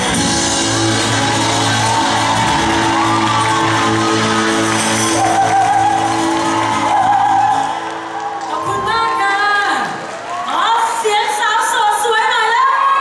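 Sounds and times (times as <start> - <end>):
drums: 0.0 - 7.8
acoustic and electric guitars: 0.0 - 10.2.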